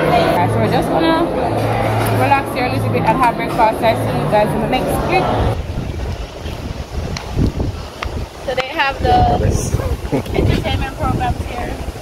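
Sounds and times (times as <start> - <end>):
wind rumbling on microphone: 4.3 - 12.0.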